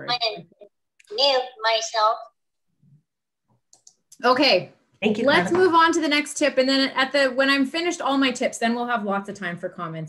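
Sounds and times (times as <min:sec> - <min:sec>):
person speaking: 0:00.0 - 0:02.3, 0:05.0 - 0:06.0.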